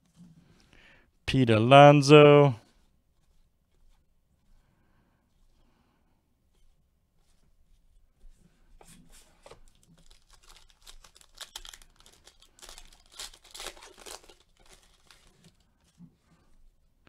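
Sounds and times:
wrapper tearing and crinkling: 0:09.7 - 0:15.6.

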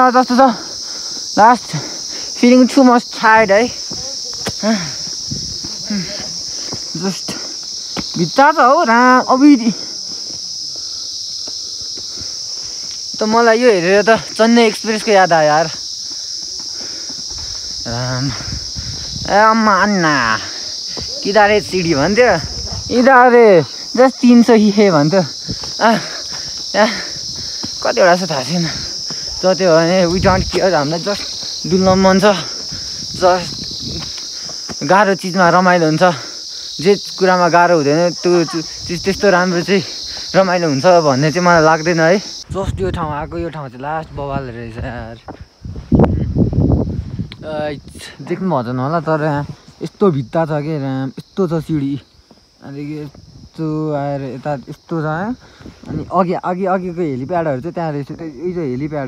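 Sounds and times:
insects droning: 0:00.0 - 0:59.0
man's voice: 0:19.2 - 0:26.2, 0:27.8 - 0:33.6, 0:36.8 - 0:45.2.

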